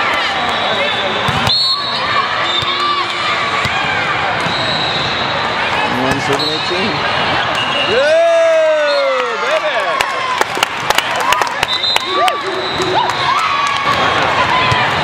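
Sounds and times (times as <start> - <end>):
volleyball hits and bounces: 1.2 - 1.6
crowd shouting: 11.2 - 15.0.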